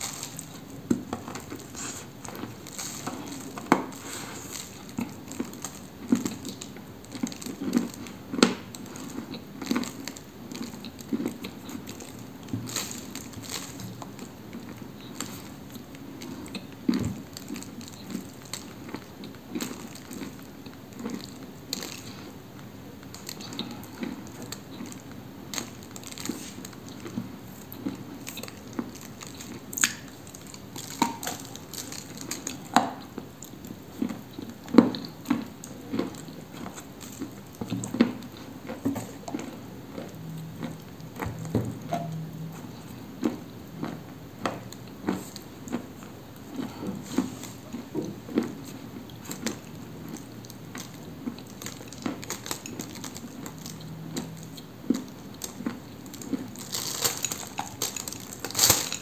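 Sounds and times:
soft crunches of chewing: 0.0 - 59.0.

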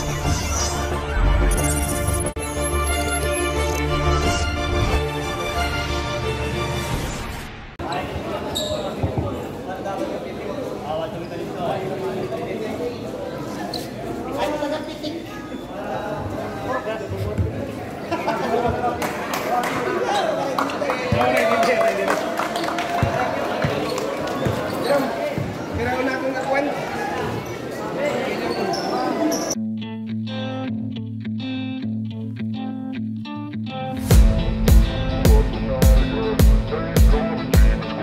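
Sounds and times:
people talking: 7.8 - 29.6
people's voices: 7.8 - 29.6, 34.3 - 38.0.

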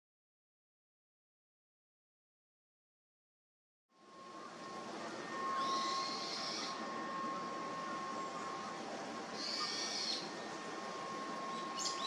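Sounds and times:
steady background hiss: 4.0 - 12.0
faint thin high tone: 5.1 - 8.7
small bird chirping: 9.4 - 10.4, 11.5 - 12.0.

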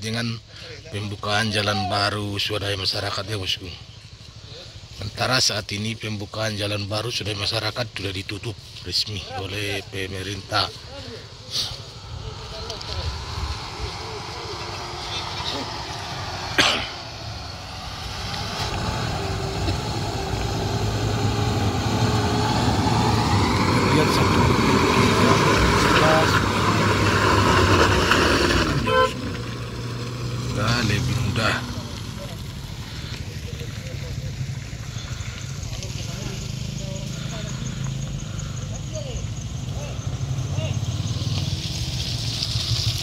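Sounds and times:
vehicle engine driving past: 9.8 - 43.0.

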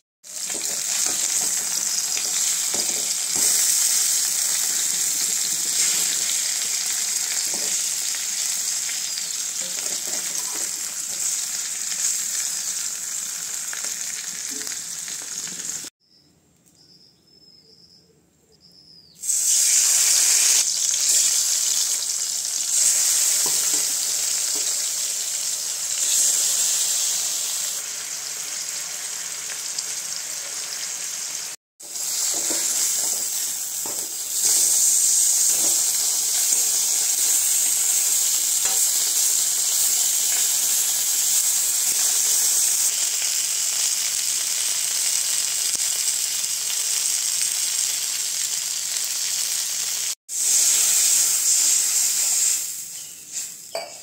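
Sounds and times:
fish sizzling in hot oil: 0.2 - 15.9, 19.2 - 53.9.

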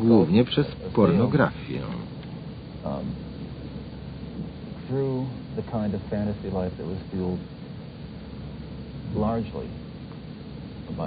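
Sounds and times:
man speaking: 0.0 - 2.1
low rumble and hiss: 0.0 - 11.0.

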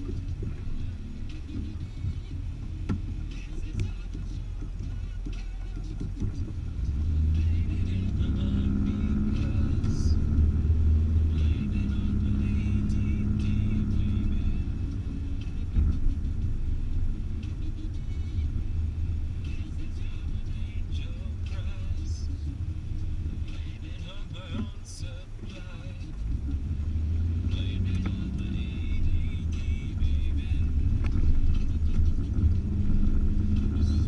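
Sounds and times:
car engine hum: 0.0 - 34.0
road noise inside car: 0.0 - 34.0.

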